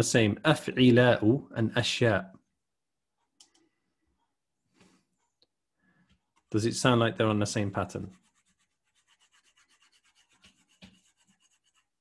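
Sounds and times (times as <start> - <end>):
stylus tick: 3.2 - 4.3
stylus scratching on screen: 7.6 - 12.0.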